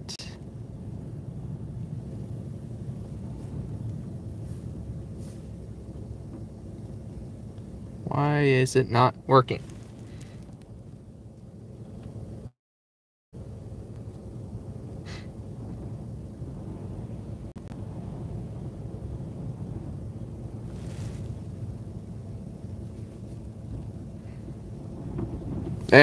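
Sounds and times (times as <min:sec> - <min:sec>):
low rumble inside car: 0:00.0 - 0:12.5, 0:13.4 - 0:26.0.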